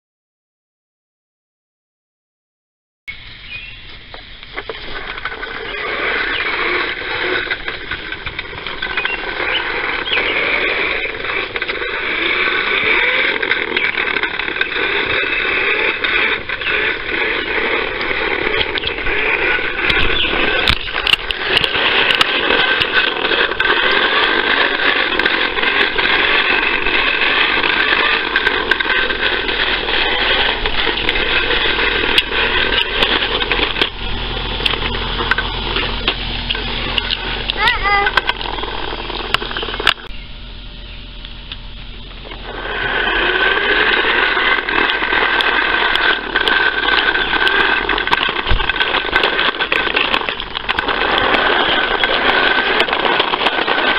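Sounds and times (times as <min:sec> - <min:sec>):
toy lawnmower being pushed: 0:03.5 - 0:40.2, 0:41.4 - 0:53.9
scattered clicks: 0:03.9 - 0:40.1, 0:41.2 - 0:53.9.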